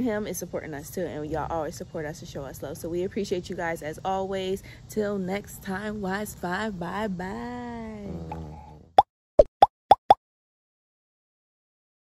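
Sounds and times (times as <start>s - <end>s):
cartoon pop sound effects: 9.4s - 10.2s.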